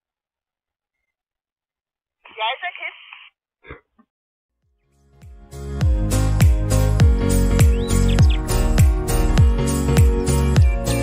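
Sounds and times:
person speaking over radio: 2.3s - 3.3s.

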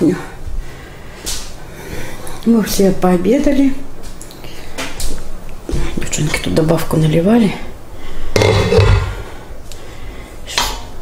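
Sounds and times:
steel pot and lid clattering: 8.4s - 9.2s.

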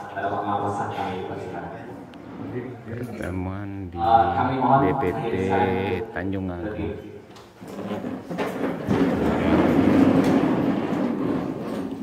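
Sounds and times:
plastic chairs scraping on tiles: 2.2s - 2.9s, 7.6s - 12.0s.

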